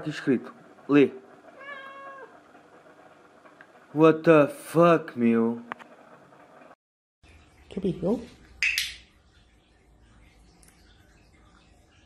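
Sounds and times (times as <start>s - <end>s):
cat meowing: 1.6s - 2.4s.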